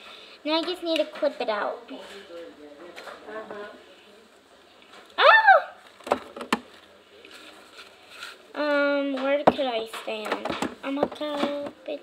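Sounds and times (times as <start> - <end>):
high voice exclaiming: 5.2 - 5.8.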